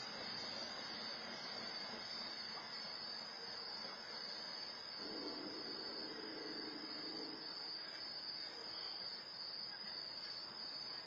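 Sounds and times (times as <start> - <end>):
crickets chirring: 0.0 - 11.0
faint hiss: 0.0 - 11.0
faint low hum: 0.0 - 11.0.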